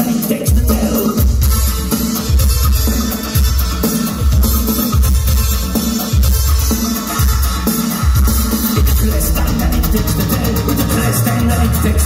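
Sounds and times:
electronic drum beat: 0.0 - 12.0
heavy synth bass line: 6.2 - 12.0.

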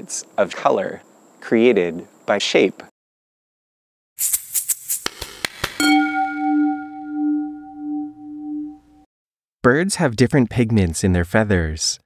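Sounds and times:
struck bell tone: 5.8 - 9.0.

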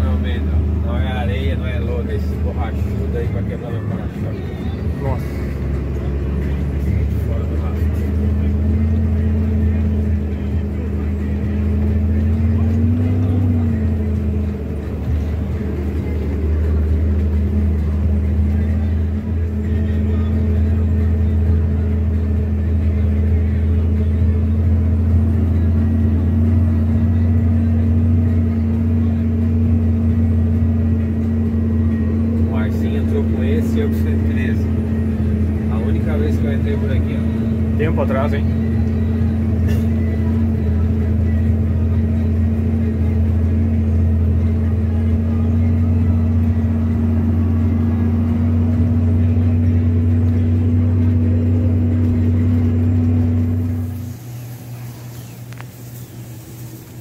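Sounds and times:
truck diesel engine running: 0.0 - 57.0.

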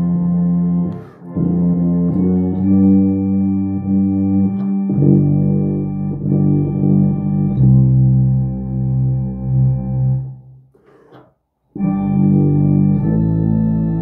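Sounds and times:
tuba playing a hymn: 0.0 - 10.5, 11.8 - 14.0
organ: 0.0 - 10.6, 11.8 - 14.0.

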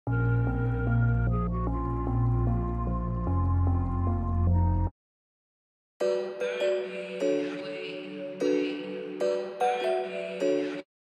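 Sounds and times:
deep sustained bass: 0.1 - 4.9
melodic loop: 6.0 - 10.8.

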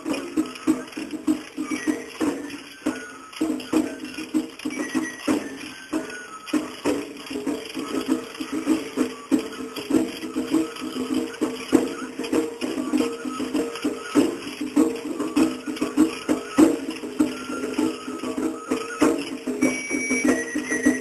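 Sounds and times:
festival drums in fast rhythm: 0.0 - 21.0
other percussion: 0.0 - 21.0.

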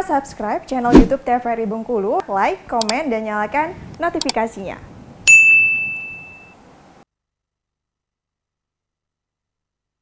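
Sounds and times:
notification bell ding: 5.3 - 6.6.

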